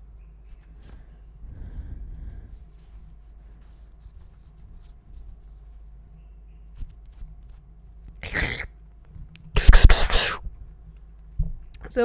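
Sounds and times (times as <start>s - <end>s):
breath hitting microphone: 0.8s - 2.7s.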